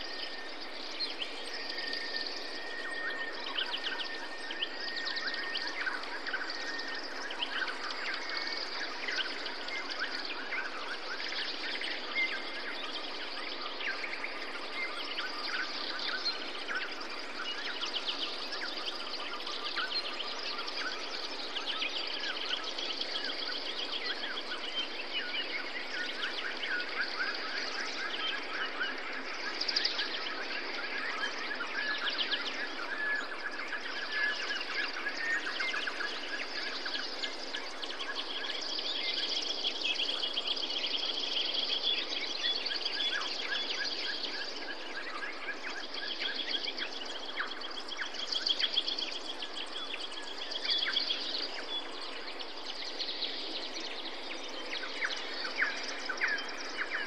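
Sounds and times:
birds chirping and trilling: 0.0 - 57.0
steady background hiss: 0.0 - 57.0.

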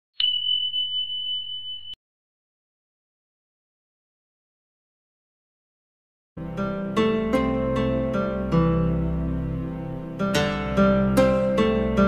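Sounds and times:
bell-like ding: 0.2 - 2.0.

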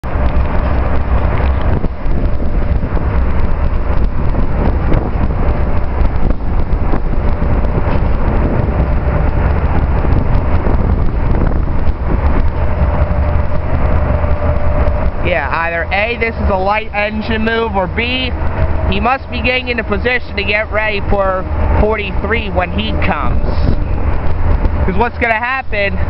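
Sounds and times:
road traffic hum: 0.0 - 26.0
wind rumble on microphone: 0.0 - 26.0.

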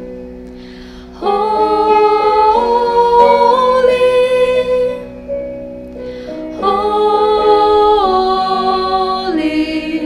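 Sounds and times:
worship song singing: 1.0 - 5.3, 6.4 - 10.0.

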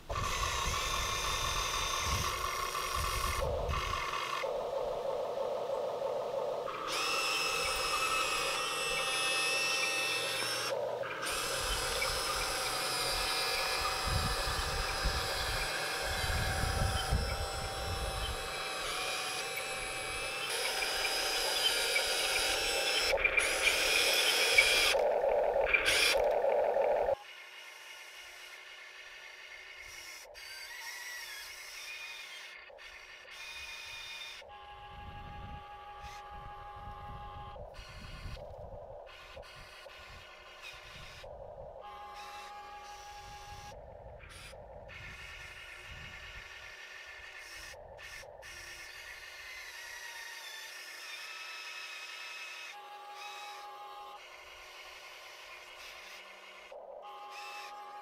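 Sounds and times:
small electric motors whining: 0.0 - 58.0.

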